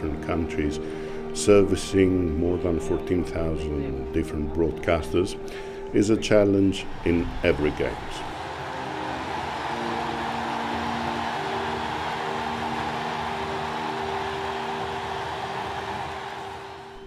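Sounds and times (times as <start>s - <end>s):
stadium crowd roaring: 6.8s - 17.0s.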